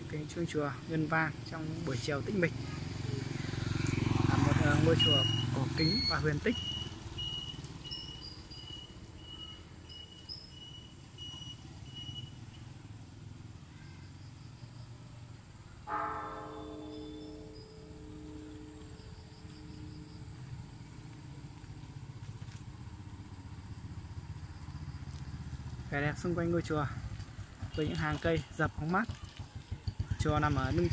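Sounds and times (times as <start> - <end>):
low vehicle engine rumble: 1.5 - 30.9
large bell ringing: 15.9 - 19.2.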